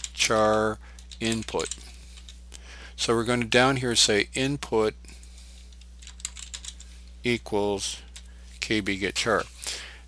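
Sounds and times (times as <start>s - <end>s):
faint electrical hum: 0.0s - 10.0s
computer keyboard typing: 6.0s - 6.8s.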